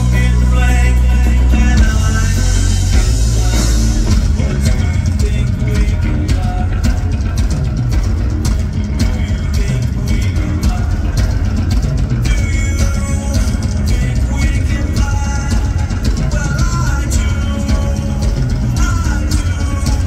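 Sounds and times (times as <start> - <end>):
bass guitar: 0.0 - 20.0
distorted electric guitar: 0.0 - 20.0
drum kit hits: 1.3 - 20.0.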